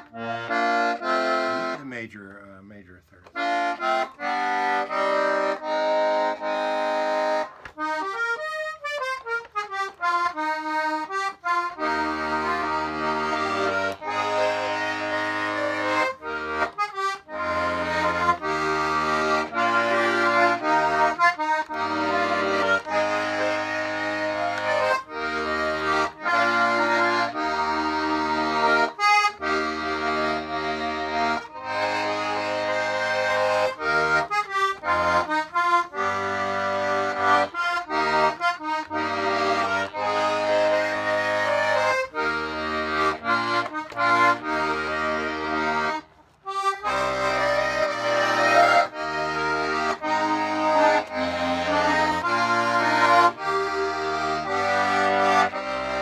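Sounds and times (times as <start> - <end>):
button accordion playing a tune: 0.0 - 56.0.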